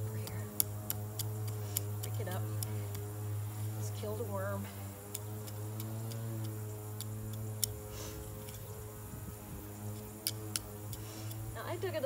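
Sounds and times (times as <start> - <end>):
trowel clicking and scraping in soil: 0.0 - 4.3, 5.0 - 9.0, 9.8 - 11.6
steady low hum: 0.0 - 12.0.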